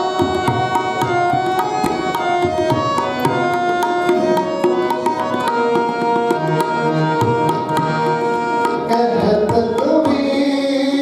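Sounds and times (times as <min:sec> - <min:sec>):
tabla strokes: 0:00.0 - 0:10.4
harmonium chords: 0:00.0 - 0:11.0.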